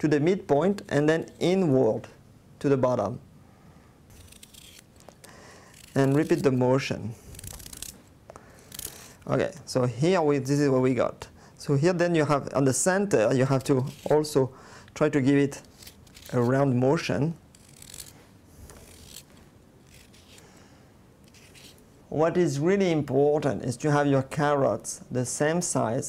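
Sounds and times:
knife scraping carrot: 4.1 - 4.9, 5.7 - 6.6, 7.2 - 8.0, 8.7 - 9.3, 13.4 - 14.3, 15.6 - 16.6, 17.5 - 20.4, 21.3 - 21.8.

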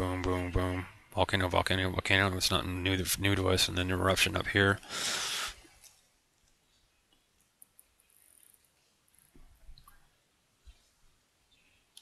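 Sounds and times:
breathy hiss: 4.8 - 5.8.

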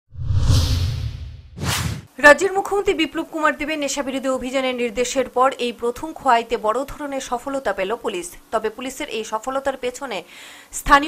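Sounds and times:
low rumble: 0.1 - 2.0
whoosh sound effect: 0.1 - 2.1.

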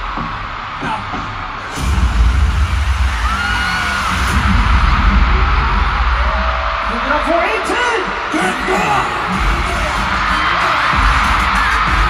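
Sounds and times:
crowd noise: 0.0 - 12.0
crowd shouts: 0.0 - 12.0
live pop music with bass beat: 8.2 - 12.0.

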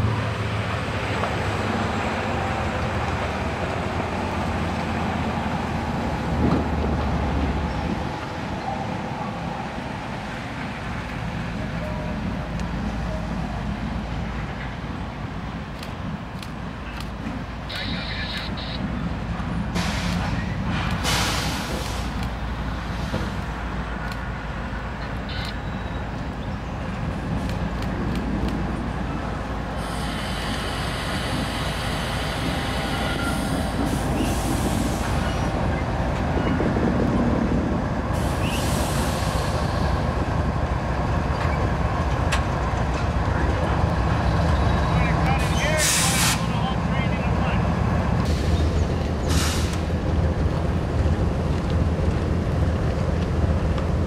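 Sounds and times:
diesel locomotive rumbling: 0.0 - 54.0
hiss bursts: 20.9 - 22.2, 29.8 - 35.2, 38.2 - 39.7, 45.4 - 46.5, 49.3 - 49.9.

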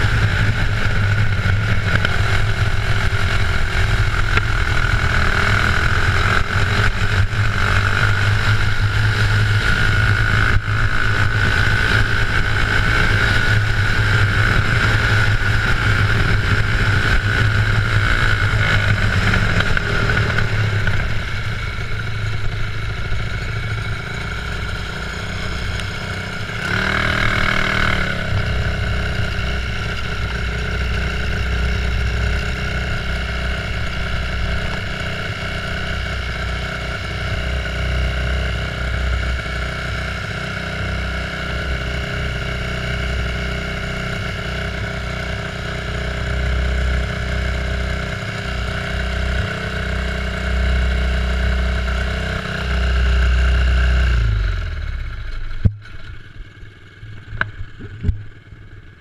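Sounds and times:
kart engine running: 0.0 - 59.0.

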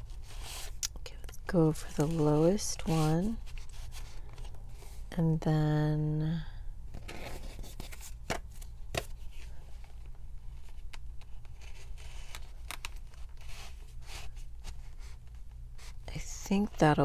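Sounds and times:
paper cards rustling: 1.8 - 4.6.

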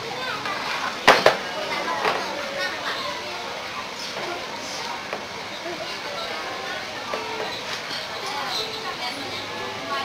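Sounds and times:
children chattering: 0.0 - 10.0
plastic chair knocking on tiles: 1.0 - 1.4.

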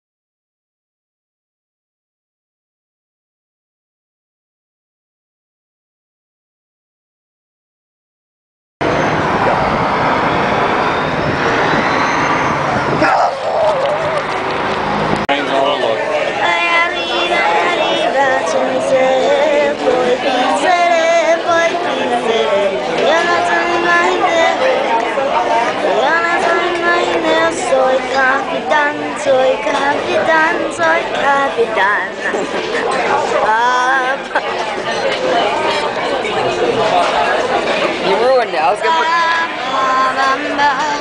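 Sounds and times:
loud steady rushing noise: 8.8 - 34.9
chatter of diners: 8.8 - 41.0
boy singing in sing-song voice: 16.2 - 34.6, 38.0 - 41.0.

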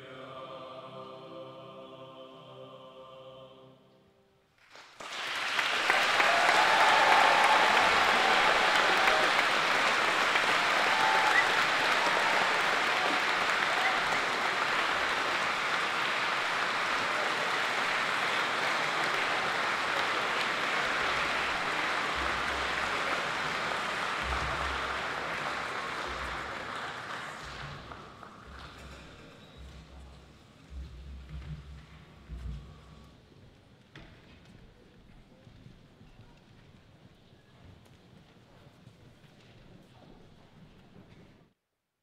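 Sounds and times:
audience applauding: 4.6 - 30.3.

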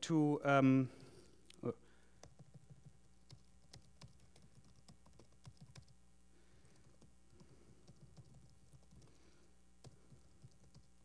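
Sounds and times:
low electrical hum: 0.0 - 11.0
laptop keyboard typing: 2.2 - 6.0, 6.6 - 9.2, 9.8 - 11.0.

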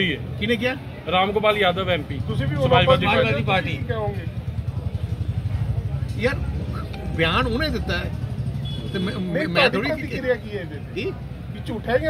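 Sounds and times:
man speaking: 8.9 - 12.0.

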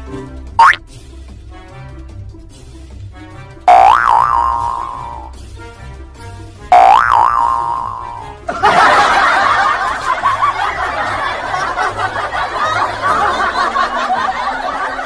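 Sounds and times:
light background music: 0.0 - 15.0
cartoon boing effects: 0.6 - 0.8, 3.7 - 5.3, 6.7 - 8.2
laughter sound effect: 6.8 - 15.0.

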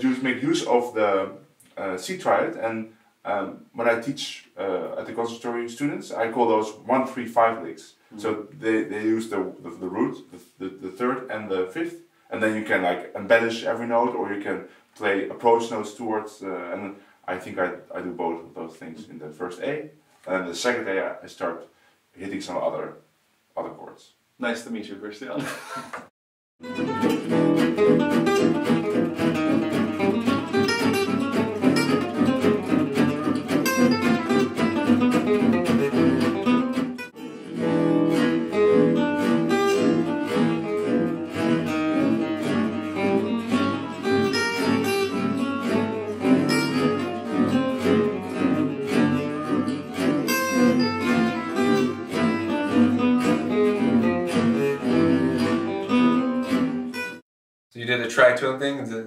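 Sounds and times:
rhythm guitar accompaniment: 25.9 - 57.2
lead guitar soloing: 26.6 - 57.2.

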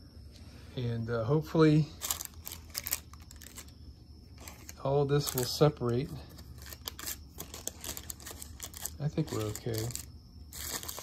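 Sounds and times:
wax paper crinkling: 1.8 - 11.0.

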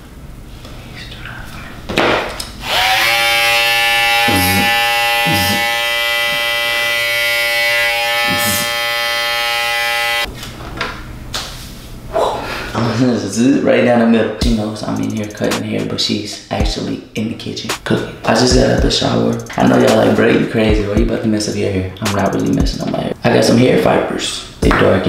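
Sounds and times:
electric hair clippers buzzing: 2.5 - 10.3.

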